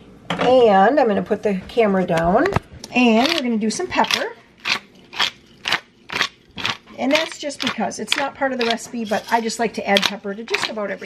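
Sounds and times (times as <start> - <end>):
pepper grinder grinding: 3.0 - 11.0.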